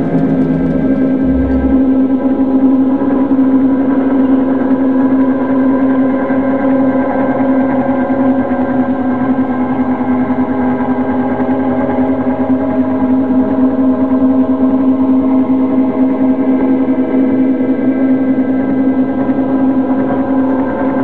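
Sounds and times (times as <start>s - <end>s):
electronic drone: 0.4s - 2.4s.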